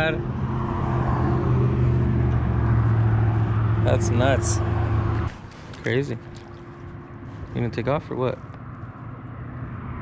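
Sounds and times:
low motor hum: 0.0 - 7.5.

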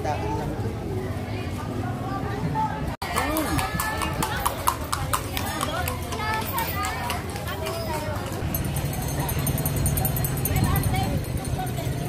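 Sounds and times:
people talking: 0.0 - 12.0
horse hooves clip-clopping on stone: 3.4 - 9.4.

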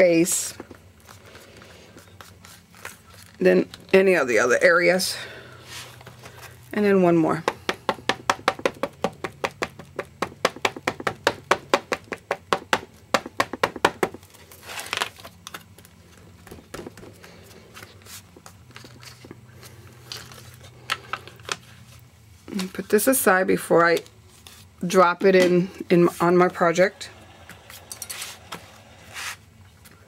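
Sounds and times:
ink pad tapping on stamp: 7.4 - 14.1
hand rubbing: 27.6 - 29.5.

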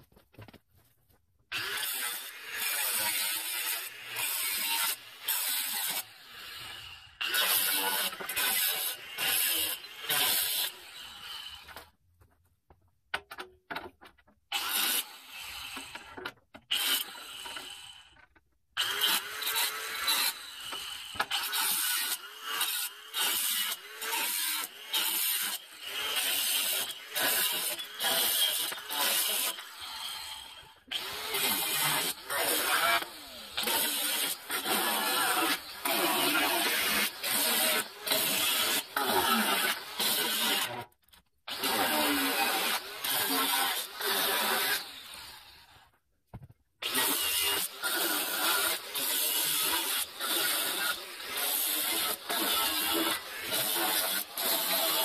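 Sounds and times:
angle grinder cutting steel: 1.5 - 11.8, 14.5 - 18.2, 18.8 - 40.9, 41.5 - 45.8, 46.8 - 55.0.

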